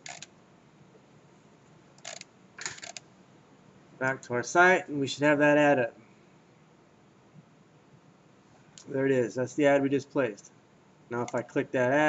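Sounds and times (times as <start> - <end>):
computer mouse clicks: 2.0 - 3.0.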